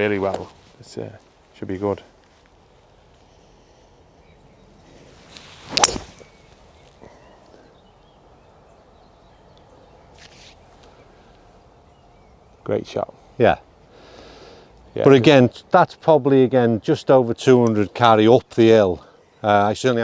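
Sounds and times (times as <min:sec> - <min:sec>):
faint outdoor background: 0:00.0 - 0:20.0
golf club swish: 0:05.2 - 0:06.5
golf ball impact crack: 0:05.6 - 0:07.0.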